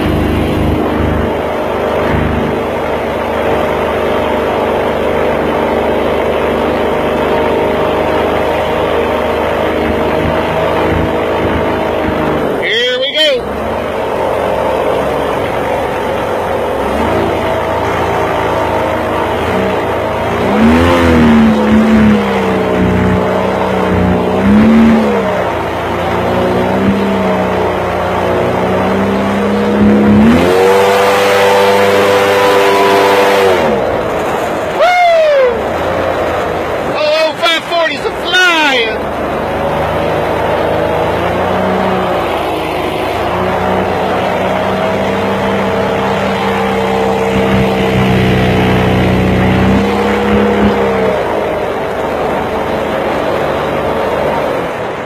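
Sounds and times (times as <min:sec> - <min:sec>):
boat engine running: 0:00.0 - 0:55.0.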